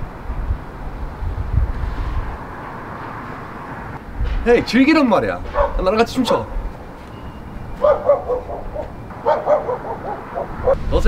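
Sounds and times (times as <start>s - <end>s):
dog yipping and whining: 5.5s - 5.8s, 7.4s - 10.8s.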